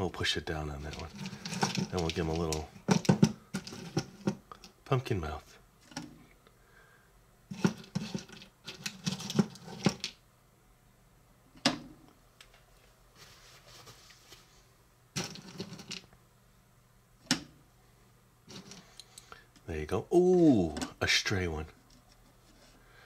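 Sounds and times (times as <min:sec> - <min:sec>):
candies clicking and rattling: 0:00.9 - 0:04.7.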